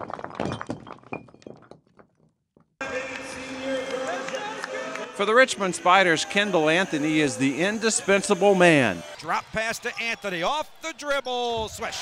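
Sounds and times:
brick wall cracking and crumbling: 0.0 - 2.8.

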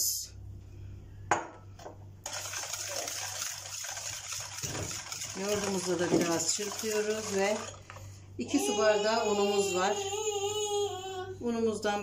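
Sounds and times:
whisk beating batter in bowl: 2.3 - 8.1.

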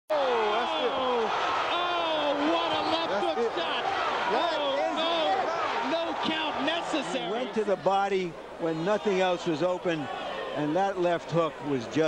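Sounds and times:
excited voices shouting: 0.1 - 7.7.

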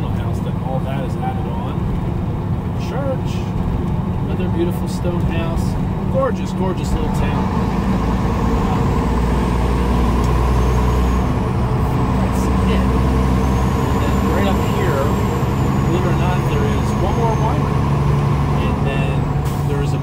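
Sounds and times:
road noise: 0.0 - 20.0
truck diesel engine running: 0.0 - 20.0.

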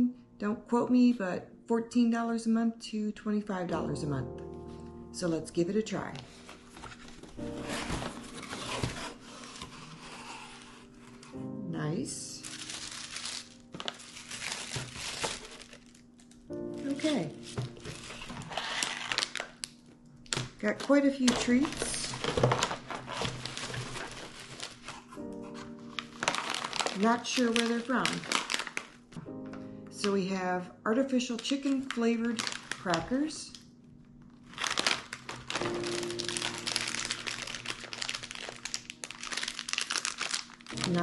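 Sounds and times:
plastic packaging crinkling: 6.0 - 11.4, 12.0 - 30.2, 31.1 - 41.0.

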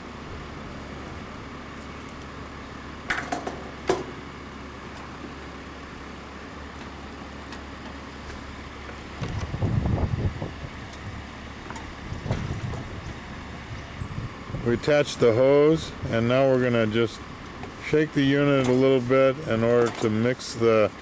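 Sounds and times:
bumping and rustling: 7.8 - 13.3.

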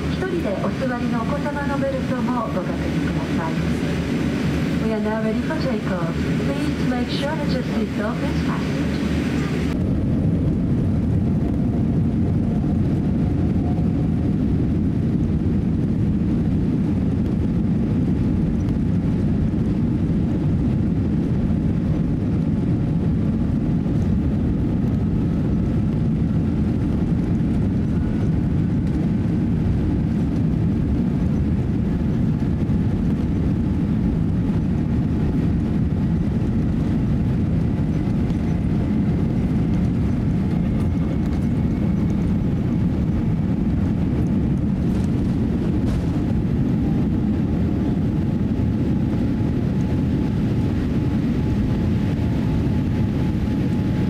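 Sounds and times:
rising engine whine: 0.0 - 21.2, 22.1 - 54.0
jet engine rumble in cabin: 0.0 - 54.0.

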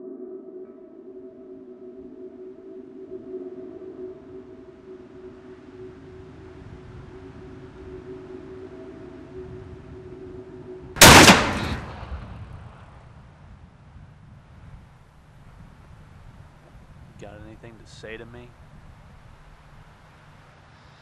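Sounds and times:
low musical drone: 0.0 - 13.0
shotgun blast: 11.0 - 12.8.

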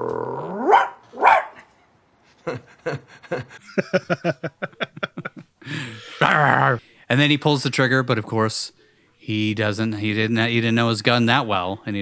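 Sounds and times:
man imitating dog growl and bark: 0.0 - 1.0.

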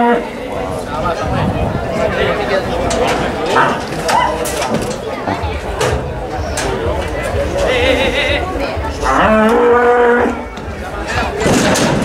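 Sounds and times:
bull bellowing: 9.0 - 10.5.

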